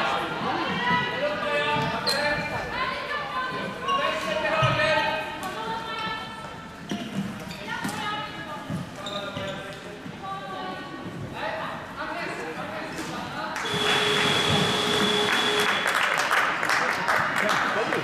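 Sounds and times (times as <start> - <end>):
voices in a hall: 0.0 - 18.0
sneaker squeaks: 1.7 - 2.7, 6.8 - 9.9
spectators clapping and cheering: 13.6 - 18.0.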